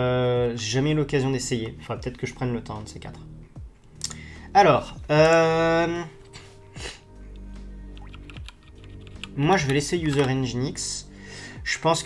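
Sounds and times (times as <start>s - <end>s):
quiet background music: 0.0s - 12.0s
computer keyboard key presses: 8.0s - 10.4s.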